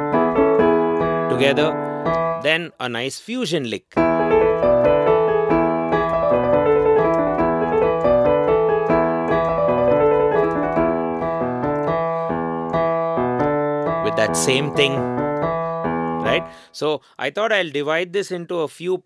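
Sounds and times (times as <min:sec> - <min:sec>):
digital piano rock riff: 0:00.0 - 0:02.7, 0:04.0 - 0:16.8.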